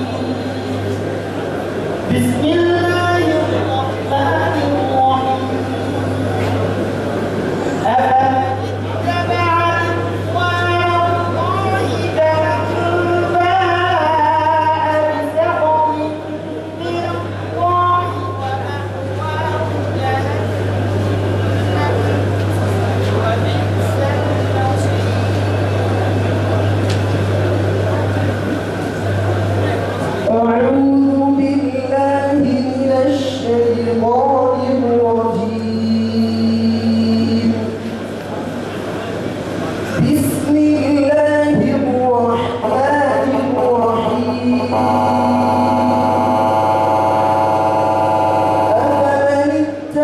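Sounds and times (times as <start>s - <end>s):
man reciting in a long held note: 2.1s - 5.9s, 7.8s - 20.4s, 30.3s - 37.8s, 40.0s - 50.0s.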